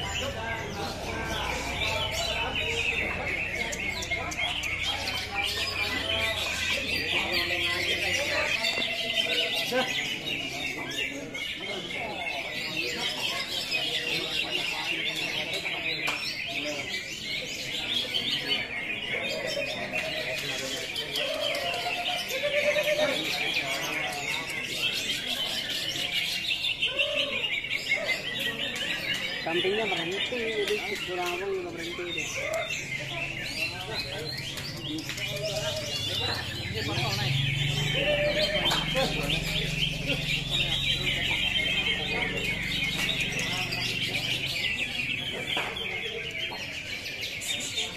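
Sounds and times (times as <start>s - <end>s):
birds chirping and trilling: 0.0s - 47.9s
murmur of voices: 0.0s - 47.9s.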